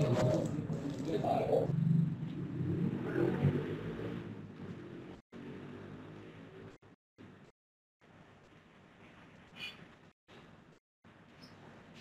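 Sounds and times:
vehicle engine noise: 0.0 - 6.8.

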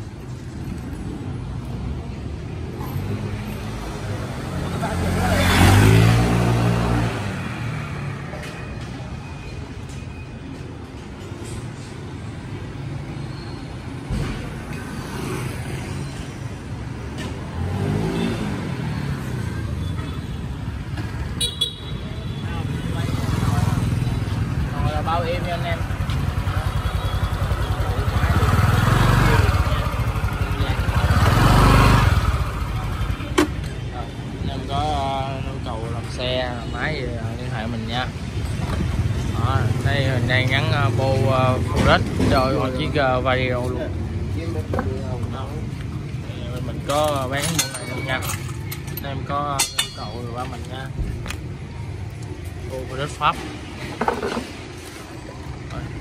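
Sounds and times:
street traffic: 0.0 - 56.0.

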